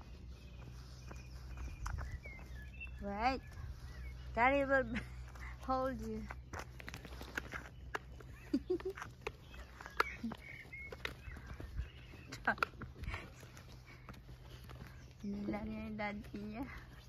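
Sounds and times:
footsteps on tarmac: 0.0 - 17.0
steady low rumble: 0.0 - 17.0.

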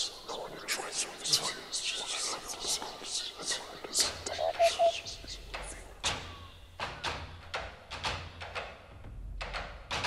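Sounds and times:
person whispering: 0.0 - 6.1.

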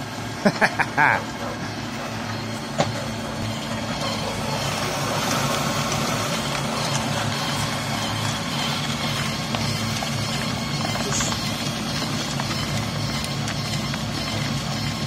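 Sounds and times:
pellet mill motor hum: 0.0 - 15.0
grinding rasp: 1.4 - 15.0.

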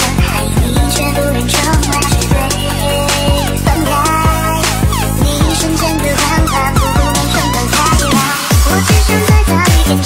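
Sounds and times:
electronic music with beat: 0.0 - 10.0.

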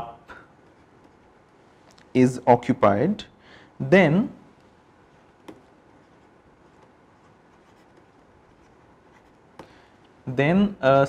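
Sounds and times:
stylus scratching on tablet screen: 5.5 - 9.6.

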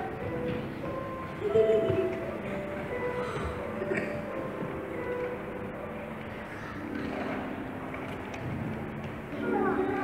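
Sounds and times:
droning ambient music: 0.0 - 10.0.

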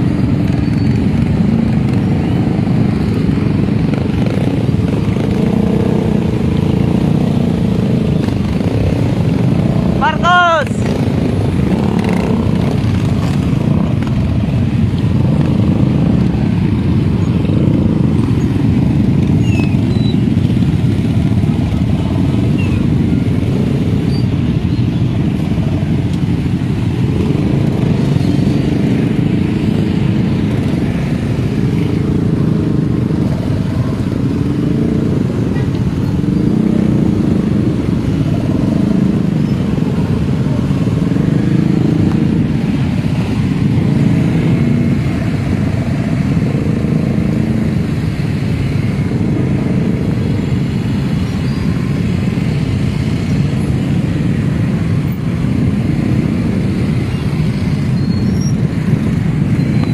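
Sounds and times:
motorcycle engines droning: 0.0 - 59.9.

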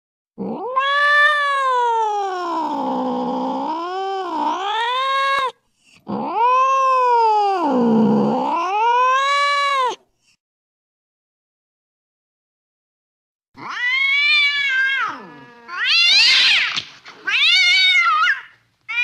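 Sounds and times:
cats yowling in a fight: 0.4 - 10.0, 13.6 - 19.0.

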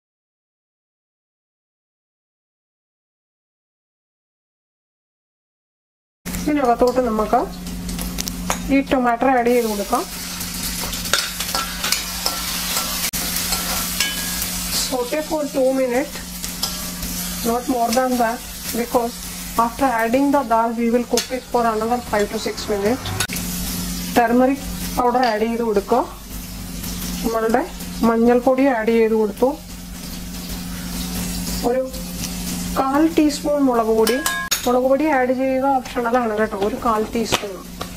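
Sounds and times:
steady low hum: 6.3 - 28.9
tomatoes sizzling in oil: 6.3 - 37.9
metal spoon scraping pan: 10.8 - 15.3, 16.4 - 17.7, 21.0 - 23.4, 34.0 - 34.7.

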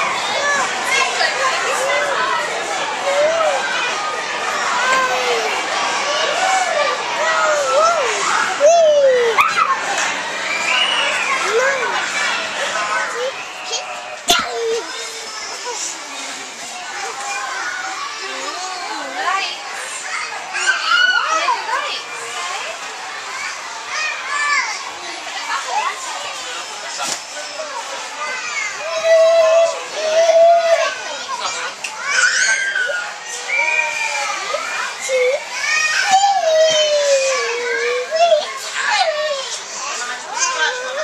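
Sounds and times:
children chattering: 0.0 - 41.0.

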